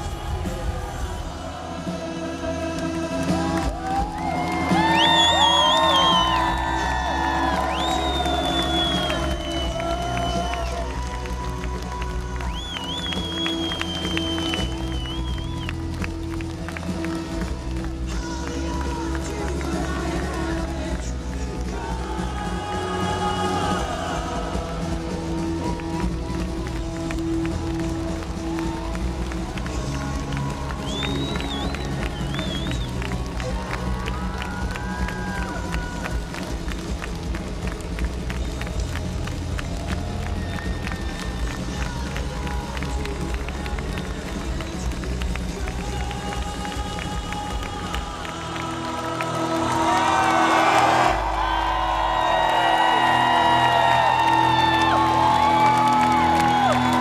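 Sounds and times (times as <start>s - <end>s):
live rock band playing: 0.0s - 48.5s
crowd cheering and whooping: 0.0s - 57.0s.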